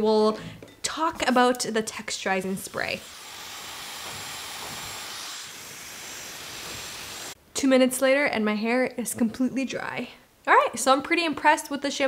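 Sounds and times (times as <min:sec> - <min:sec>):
hair dryer blowing: 0:02.6 - 0:07.4
hair dryer motor whine: 0:03.0 - 0:07.4.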